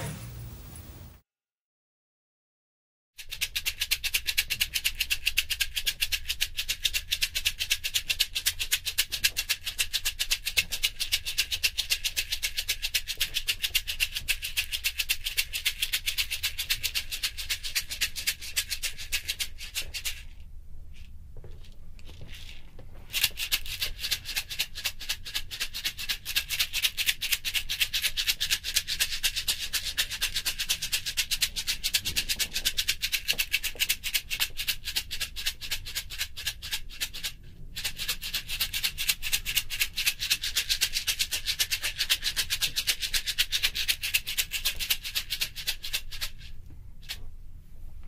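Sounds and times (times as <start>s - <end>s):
hand shaker shaken rapidly: 3.2s - 20.4s, 22.2s - 47.2s.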